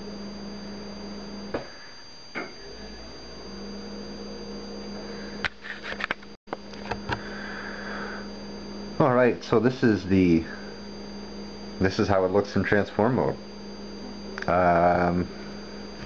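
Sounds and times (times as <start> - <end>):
electrical hum and hiss: 0.0 - 16.0.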